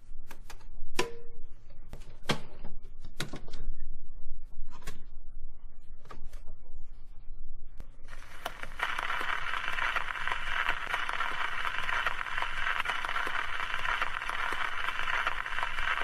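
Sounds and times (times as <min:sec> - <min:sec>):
record surface hiss: 0:07.7 - 0:16.0
record crackles and clicks: 0:07.8 - 0:16.0.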